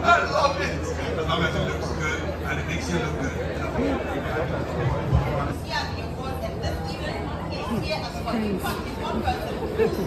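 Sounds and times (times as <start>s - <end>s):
indistinct chatter of voices: 0.0s - 10.0s.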